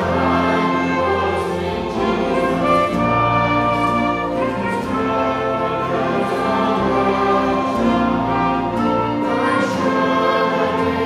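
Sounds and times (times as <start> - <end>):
group singing a hymn: 0.0 - 11.0
piano accompaniment: 0.0 - 11.0.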